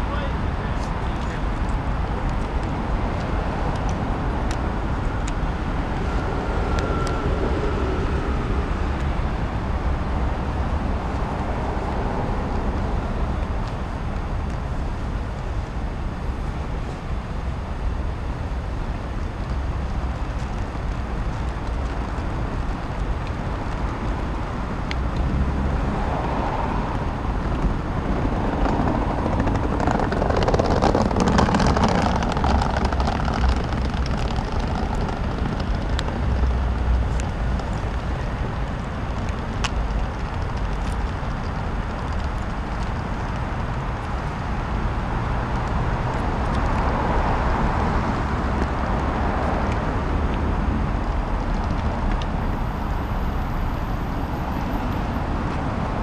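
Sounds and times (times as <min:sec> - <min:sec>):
low city traffic rumble: 0:00.0 - 0:56.0
vehicle passing by: 0:02.9 - 0:13.0, 0:23.8 - 0:33.6.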